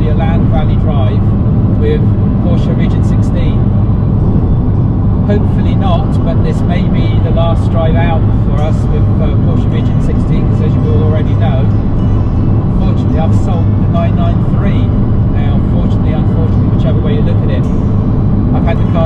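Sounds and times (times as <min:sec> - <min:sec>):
man talking: 0:00.0 - 0:03.7, 0:05.2 - 0:11.8, 0:12.7 - 0:17.7, 0:18.5 - 0:19.0
car road and engine rumble: 0:00.0 - 0:19.0.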